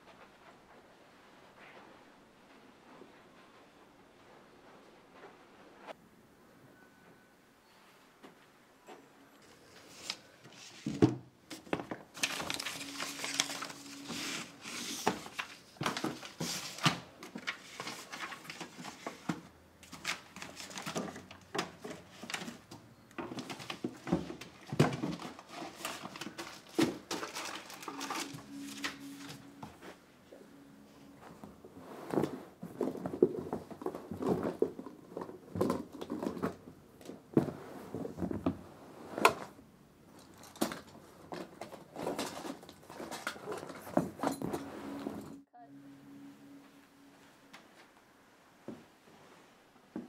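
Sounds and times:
hands rummaging through household things: 9.4s - 38.6s, 39.2s - 45.5s.

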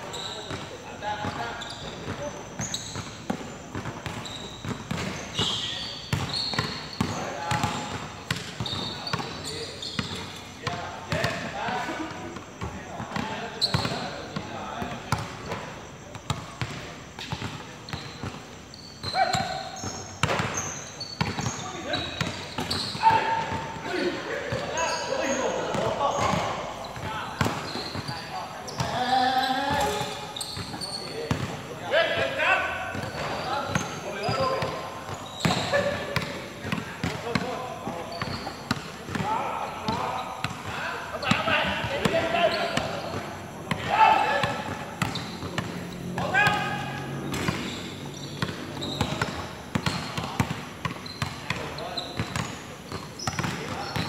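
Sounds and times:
players calling and talking: 0.0s - 54.0s
basketball bouncing on hard court: 1.2s - 11.5s, 19.0s - 23.6s, 29.7s - 31.6s, 32.9s - 54.0s.

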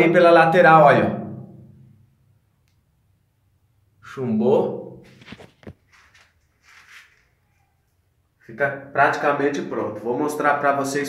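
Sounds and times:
soft rustle: 5.1s - 8.1s.

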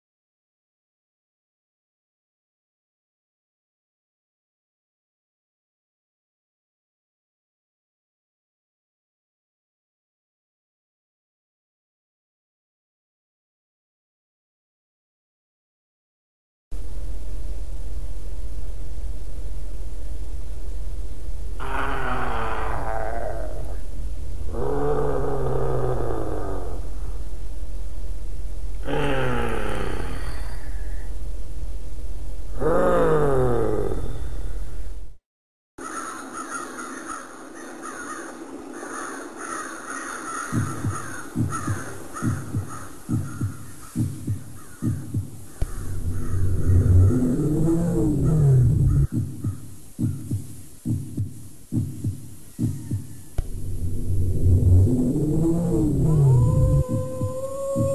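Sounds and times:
low rumbling drone: 16.7s - 35.2s, 40.5s - 49.6s, 53.3s - 57.9s
steady low hum: 16.7s - 35.2s, 36.8s - 57.9s
rising and falling moan: 21.4s - 31.3s, 32.4s - 35.0s, 45.6s - 49.2s, 53.4s - 57.9s
man making monster growls: 21.6s - 23.8s, 24.5s - 27.0s, 28.8s - 30.7s, 32.6s - 34.2s, 45.7s - 49.1s, 53.4s - 57.9s
crows cawing: 35.8s - 47.6s, 48.2s - 49.6s
heartbeat thumping: 40.5s - 57.9s.

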